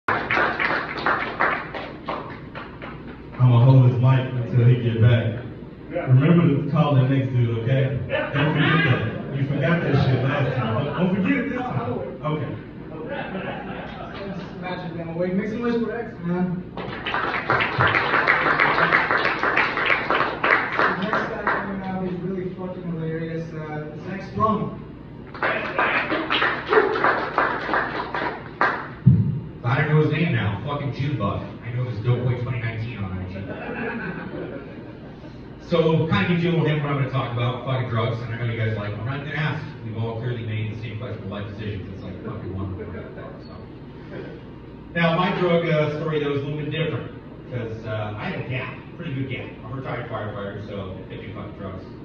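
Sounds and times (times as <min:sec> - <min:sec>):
small audience clapping: 0:00.0 - 0:03.6, 0:16.7 - 0:22.1, 0:25.2 - 0:29.2
sharp close claps: 0:00.1 - 0:03.4
breathy laughter: 0:13.0 - 0:14.1.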